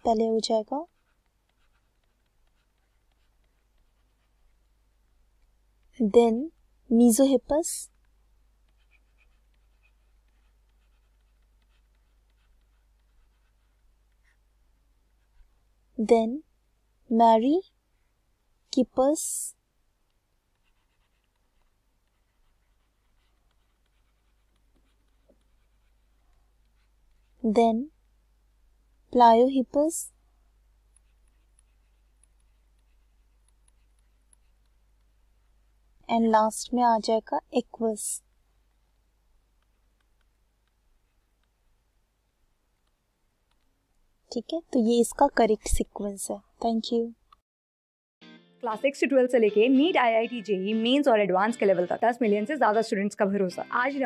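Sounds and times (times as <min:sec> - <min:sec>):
stylus scratching on tablet: 0:00.0 - 0:15.6, 0:18.8 - 0:28.2, 0:30.8 - 0:47.0.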